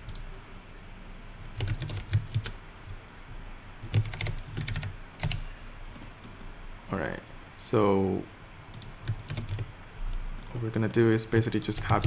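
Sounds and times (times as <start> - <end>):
computer keyboard typing: 1.6 - 2.6, 3.8 - 6.4, 8.7 - 9.7, 11.4 - 12.0.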